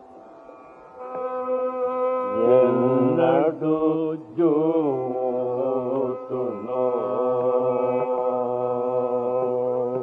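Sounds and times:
steady drone: 0.0s - 10.0s
person singing ornamented vocal: 1.0s - 10.0s.

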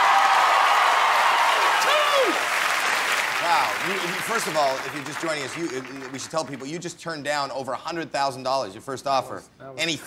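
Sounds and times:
crowd applauding: 0.0s - 6.7s
man exclaiming: 1.8s - 2.4s.

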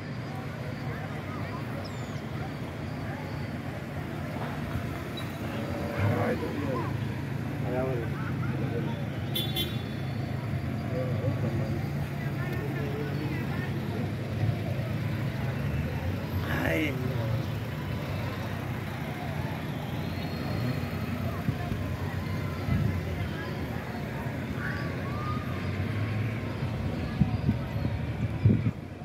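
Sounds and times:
faint voices of people: 0.0s - 29.0s
low rumble of passing traffic: 0.0s - 29.0s.

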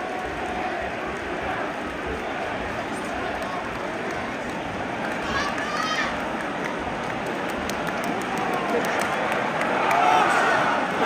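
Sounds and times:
fans calling out: 0.0s - 7.0s
stadium crowd hubbub: 0.0s - 11.0s.

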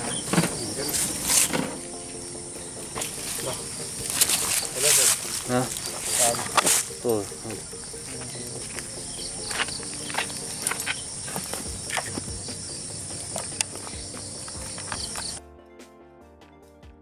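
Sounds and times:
crickets and night insects chirping: 0.0s - 15.4s
music: 0.0s - 17.0s.

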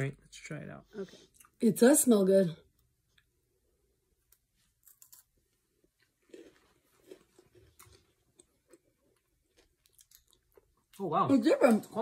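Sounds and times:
crunching and chewing wafer: 4.8s - 10.8s.

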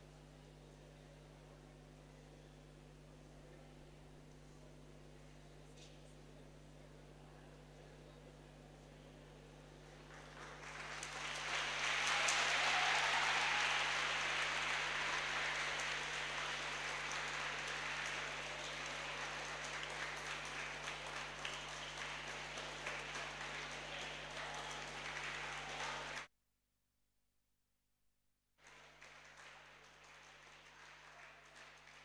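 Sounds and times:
audience applauding: 9.9s - 26.3s, 28.6s - 32.0s.

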